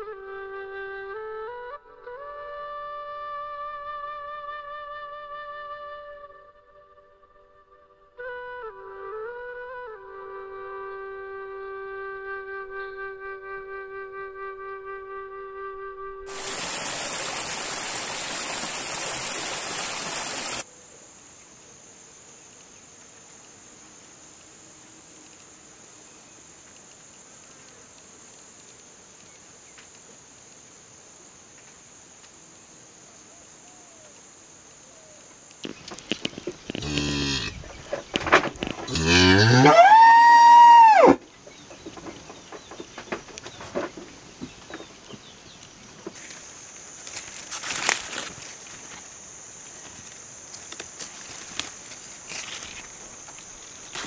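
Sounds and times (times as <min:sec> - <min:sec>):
high-pitched insect drone: 0:00.0 - 0:20.7, 0:21.8 - 0:41.5, 0:45.7 - 0:54.0
stream tumbling over rocks: 0:16.3 - 0:20.6
calf mooing: 0:38.9 - 0:40.0.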